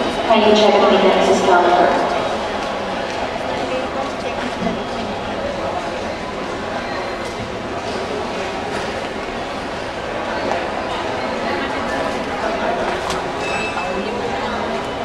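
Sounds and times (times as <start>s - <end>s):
chatter of many voices: 0.0s - 15.0s
steady background noise: 0.0s - 15.0s.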